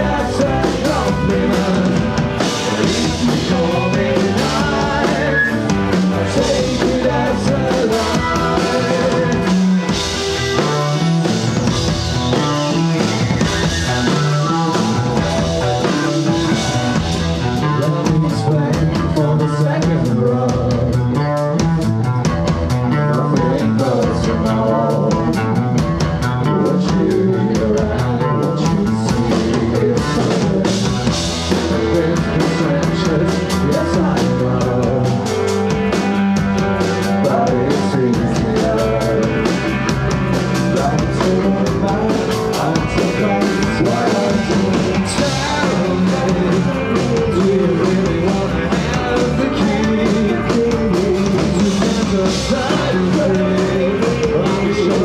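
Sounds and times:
man singing into a microphone: 0.0 - 9.7, 13.9 - 16.6, 17.6 - 21.6, 22.9 - 25.8, 26.4 - 35.3, 37.1 - 39.6, 40.6 - 55.0
drum kit beat: 0.0 - 55.0
electric guitars: 0.0 - 55.0.

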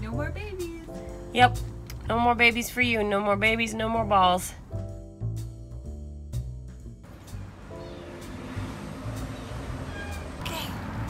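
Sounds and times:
cat meowing: 9.8 - 10.4.

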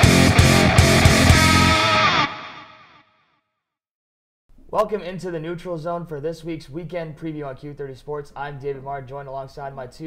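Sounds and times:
rock music with distorted guitar: 0.0 - 3.0.

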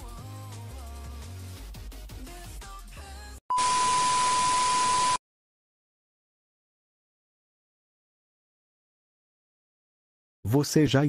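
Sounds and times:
background music: 0.0 - 3.4
steady high beep: 3.5 - 5.2.

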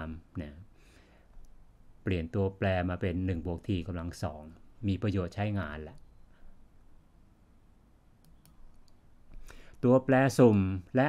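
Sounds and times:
computer mouse clicks: 8.2 - 9.8.

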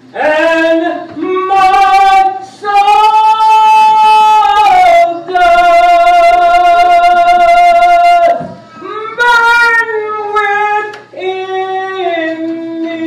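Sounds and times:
woman singing into microphone: 0.1 - 13.0.

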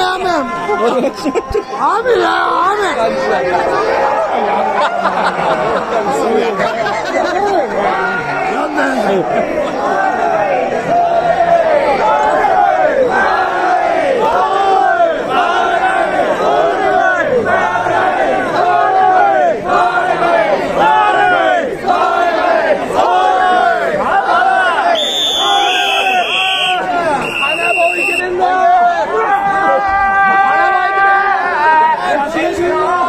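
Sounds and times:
crowd chanting in unison: 0.0 - 33.0.

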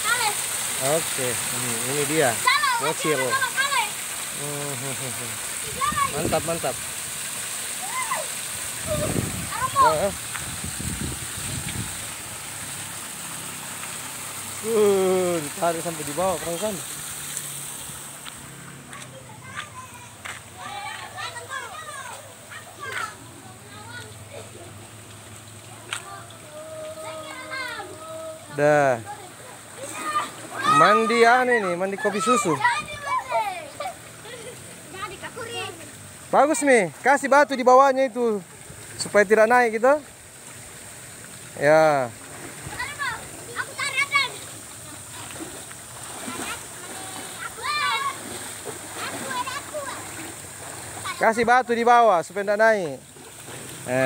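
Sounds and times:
children calling: 0.0 - 6.8, 7.6 - 16.9, 18.6 - 36.2, 42.6 - 51.6
stream water running: 0.0 - 54.0
child calling out: 2.4 - 4.0, 5.6 - 6.3, 7.8 - 10.1, 26.0 - 29.2, 29.8 - 34.4, 46.9 - 48.2.

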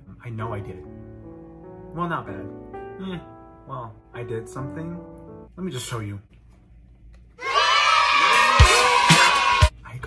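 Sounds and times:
music: 0.0 - 5.6, 8.1 - 9.8
crowd cheering and shouting: 7.4 - 9.7.

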